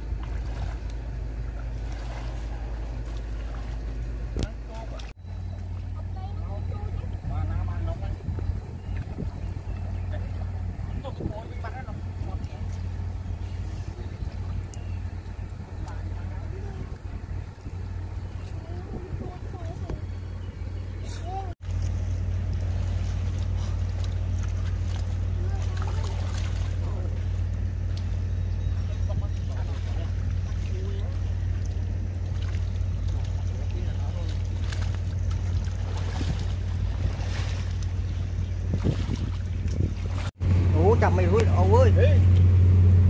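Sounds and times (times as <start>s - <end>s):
small engine droning: 0.0s - 43.0s
water splashes: 0.0s - 43.0s
faint voices: 5.8s - 21.6s.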